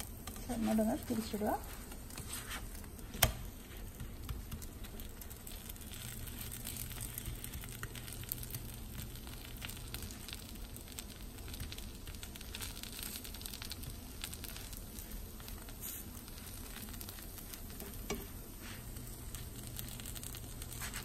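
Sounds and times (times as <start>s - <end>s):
food sizzling in a pan: 0.0s - 21.0s.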